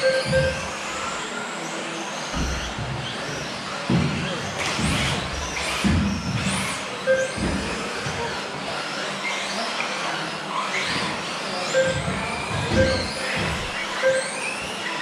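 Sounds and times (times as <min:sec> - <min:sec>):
short beeps: 0:00.0 - 0:00.7, 0:07.1 - 0:07.4, 0:11.8 - 0:13.2, 0:14.0 - 0:14.5
electric motors whining: 0:00.0 - 0:15.0
thumps: 0:11.8 - 0:14.2.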